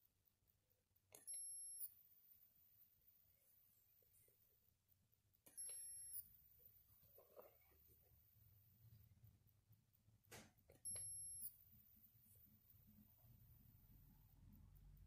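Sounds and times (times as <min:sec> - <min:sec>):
faint high electronic whine: 0:00.0 - 0:15.0.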